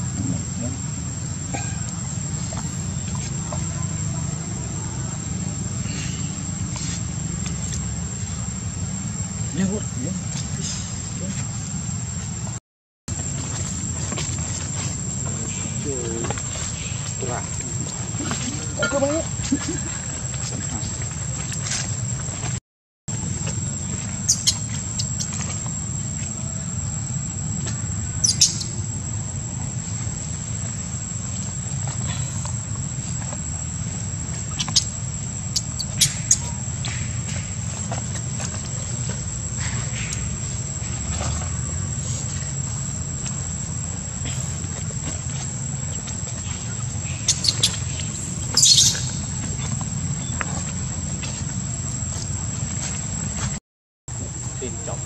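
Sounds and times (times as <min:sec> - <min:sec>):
high-pitched insect whine: 0:00.0 - 0:53.6.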